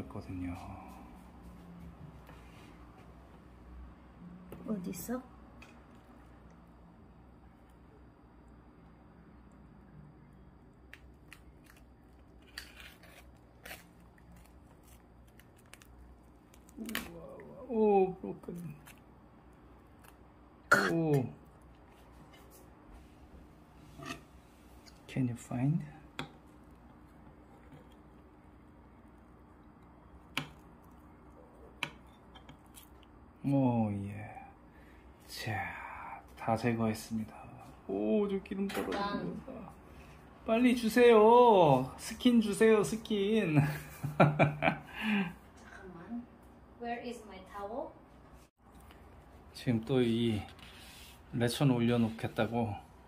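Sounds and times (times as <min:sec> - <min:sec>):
crackling pork skin snapping: 0:10.9 - 0:17.2.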